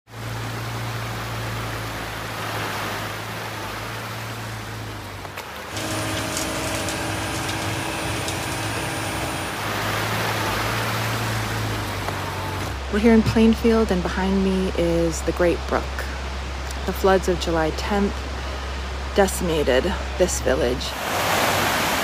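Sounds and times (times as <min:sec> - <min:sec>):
engine drone with held tones: 0:00.1 - 0:20.9
low engine hum: 0:00.1 - 0:22.0.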